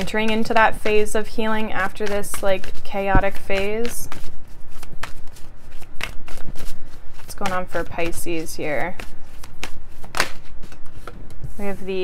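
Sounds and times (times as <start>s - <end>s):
cards being shuffled: 0.0s - 11.7s.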